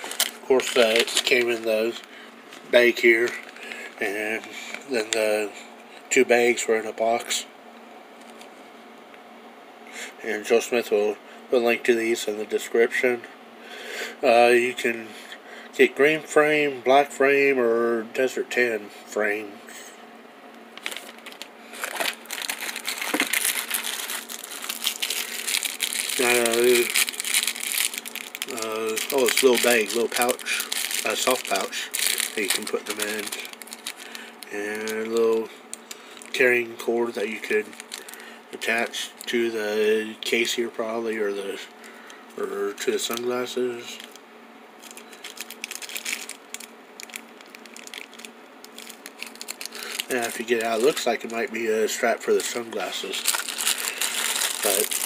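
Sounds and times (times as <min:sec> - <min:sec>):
plastic bag crinkling: 0:00.0 - 0:03.8, 0:20.7 - 0:39.5, 0:41.5 - 0:44.2, 0:44.8 - 0:55.0.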